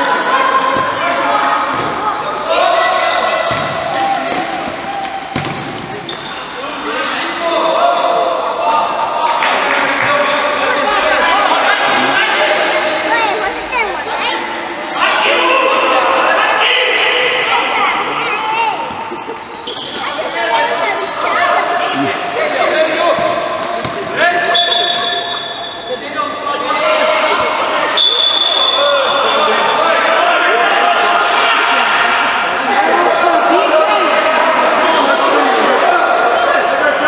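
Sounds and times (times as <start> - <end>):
players shouting: 0.0 - 18.9
sneakers squeaking on court: 1.6 - 6.6, 17.7 - 26.5.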